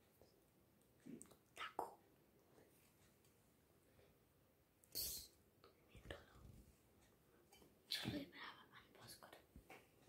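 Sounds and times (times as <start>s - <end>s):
faint whispering: 1.2s - 2.7s, 4.9s - 6.6s, 7.9s - 9.5s.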